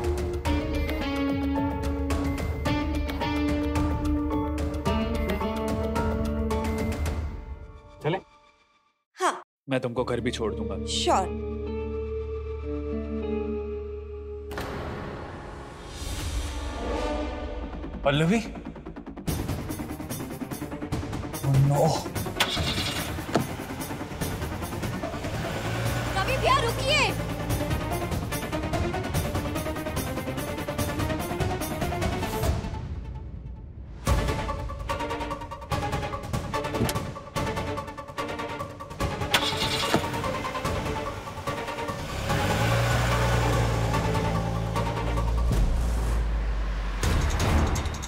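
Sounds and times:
background score music: 0:00.0 - 0:09.0, 0:09.7 - 0:48.0
car engine running: 0:22.2 - 0:30.9, 0:38.9 - 0:48.0.

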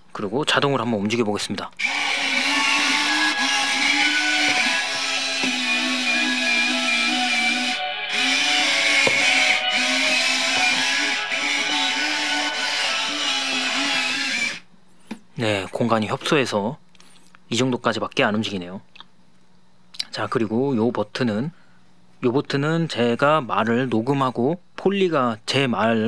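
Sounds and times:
toy speaker melody: 0:05.9 - 0:13.9.

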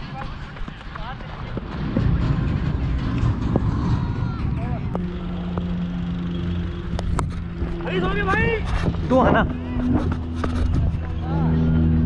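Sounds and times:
low motor hum: 0:00.0 - 0:12.0
wind rumble on microphone: 0:00.0 - 0:12.0.

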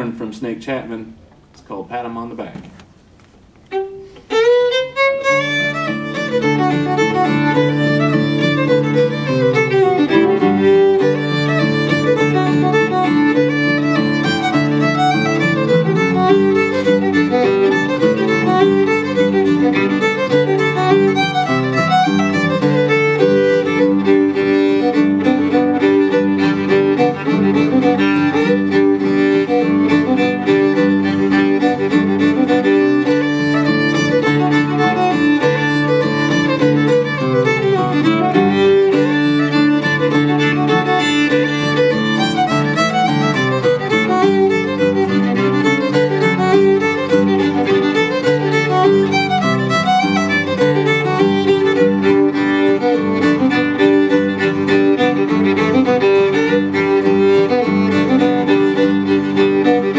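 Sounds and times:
acoustic guitar backing: 0:00.0 - 0:59.9
fiddle tune: 0:00.0 - 0:59.9.

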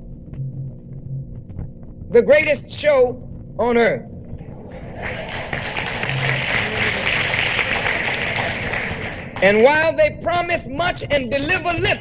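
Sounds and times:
large audience applauding: 0:04.5 - 0:09.7.

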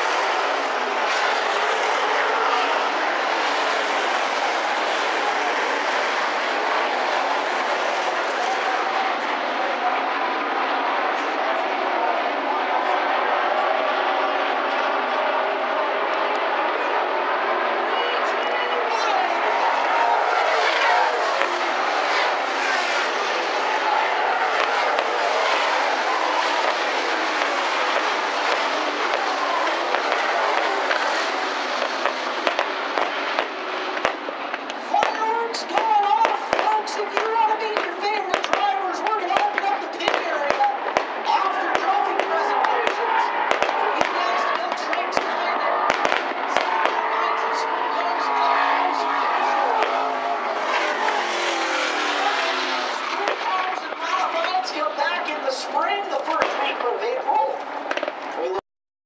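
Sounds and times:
loud noisy background: 0:00.0 - 0:58.6
fireworks popping and crackling: 0:24.4 - 0:47.0, 0:50.7 - 0:54.8, 0:55.5 - 0:58.6.

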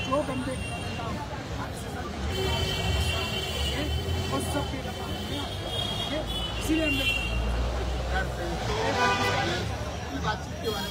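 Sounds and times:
men talking in a crowd: 0:00.0 - 0:10.9.

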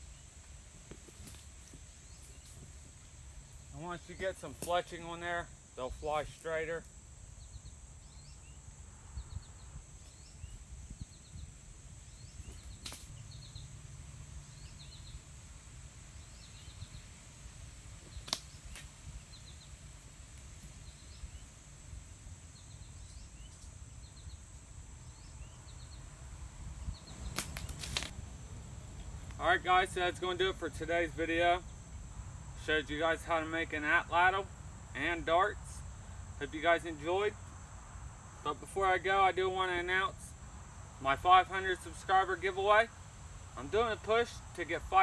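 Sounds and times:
insects droning: 0:00.0 - 0:45.0.

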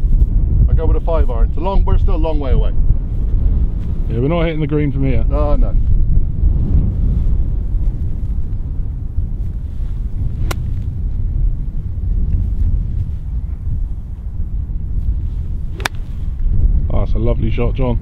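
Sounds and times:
wind buffeting microphone: 0:00.0 - 0:18.0
golf club striking ball: 0:10.3 - 0:10.9, 0:15.5 - 0:16.5.

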